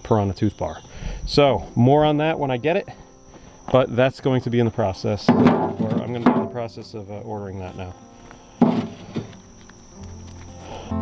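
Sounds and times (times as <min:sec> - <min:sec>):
faint high whine: 0:00.0 - 0:11.0
stone slabs clunking into steel bucket: 0:05.2 - 0:06.7, 0:08.6 - 0:09.3.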